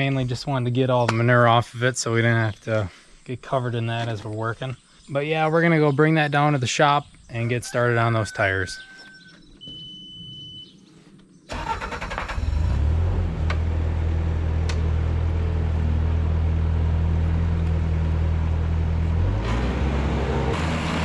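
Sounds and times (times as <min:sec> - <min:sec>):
short beep: 0:09.6 - 0:10.8
diesel engine starting and idling: 0:11.5 - 0:21.0.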